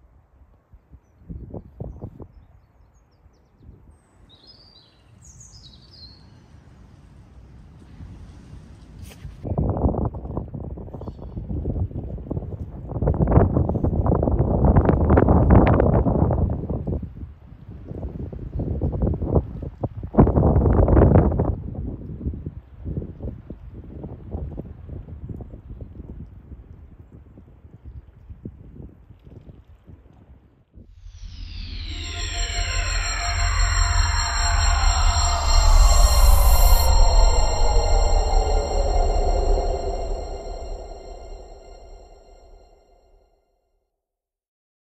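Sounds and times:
music: 31.0 - 42.6.

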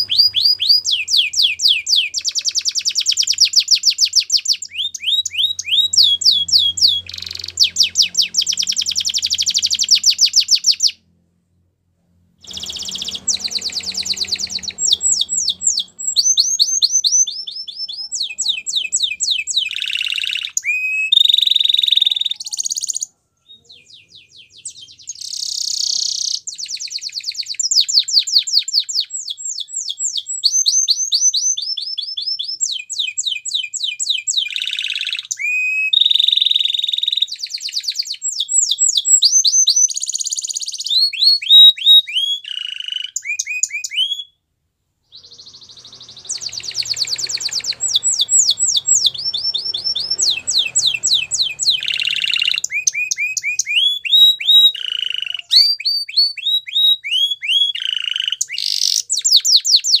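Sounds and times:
canary singing trills: 0.0 - 11.0, 12.4 - 44.4, 45.1 - 60.0.

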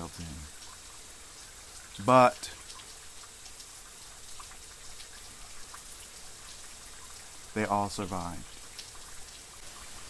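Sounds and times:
water dripping and trickling: 0.0 - 10.0.

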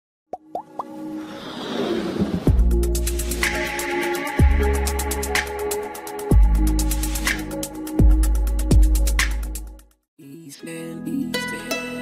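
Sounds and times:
plops gliding upward in pitch: 0.3 - 1.0.

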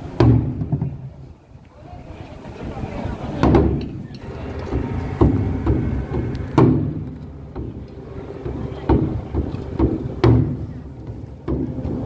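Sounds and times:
taiko drums: 0.1 - 1.1, 3.4 - 12.0.

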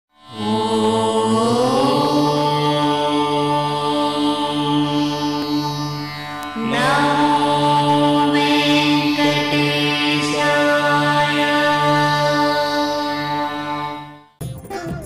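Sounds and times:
mantra sung in long notes: 0.2 - 14.2
steady drone: 0.3 - 14.2.

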